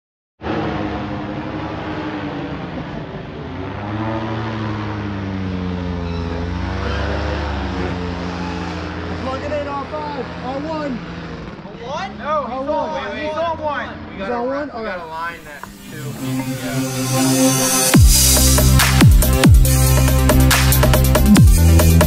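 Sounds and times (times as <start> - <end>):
paramotor engine drone: 0.4 - 11.6, 15.0 - 22.0
people talking: 9.2 - 11.0, 11.6 - 17.9.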